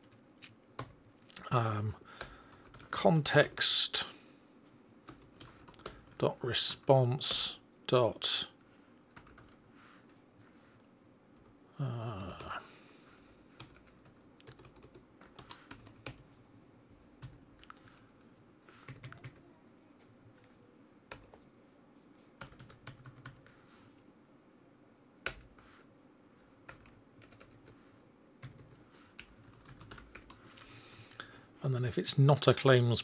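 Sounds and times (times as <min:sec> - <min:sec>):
quiet keyboard typing: 0:00.8 - 0:03.6, 0:05.0 - 0:07.6, 0:09.1 - 0:09.6, 0:10.5 - 0:12.6, 0:13.5 - 0:16.3, 0:17.2 - 0:19.5, 0:20.3 - 0:21.5, 0:22.4 - 0:23.6, 0:25.2 - 0:25.9, 0:26.6 - 0:30.7.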